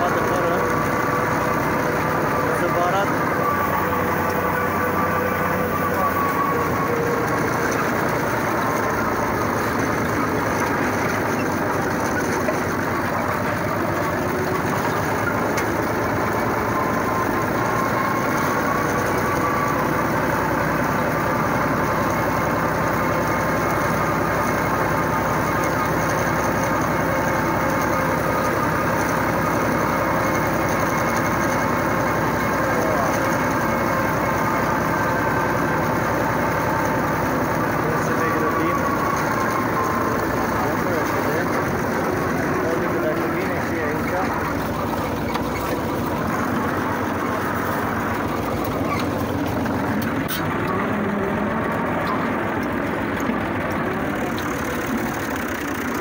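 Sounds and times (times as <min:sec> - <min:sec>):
tractor engine running: 0:00.0 - 0:56.0.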